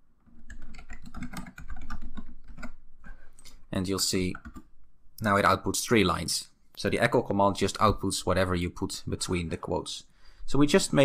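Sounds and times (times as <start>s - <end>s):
typing on computer keyboard: 0.3s - 2.8s, 4.4s - 4.7s.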